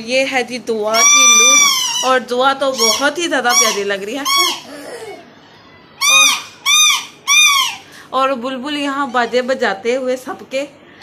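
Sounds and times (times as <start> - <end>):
toy whistle toots: 1.0 - 2.1, 6.0 - 7.8.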